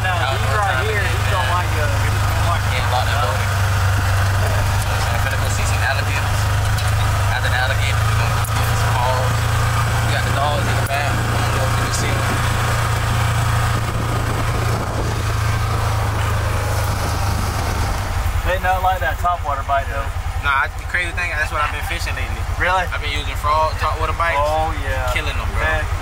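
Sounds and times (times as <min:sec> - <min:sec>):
engine running and idling: 0:00.0 - 0:26.0
faint voices: 0:00.0 - 0:26.0.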